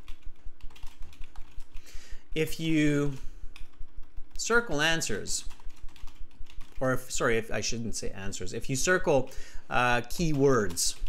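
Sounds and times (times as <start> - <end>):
typing on computer keyboard: 0.0 - 1.8, 3.0 - 4.4, 5.4 - 6.8, 10.0 - 11.0.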